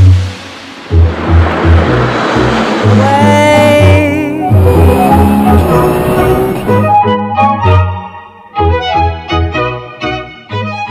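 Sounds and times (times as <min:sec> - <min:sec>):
car passing: 0:00.0 - 0:07.0.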